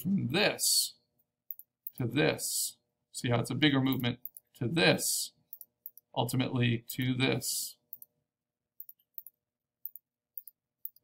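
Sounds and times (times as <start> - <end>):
computer mouse clicks: 5.5 - 6.1, 8.8 - 11.0.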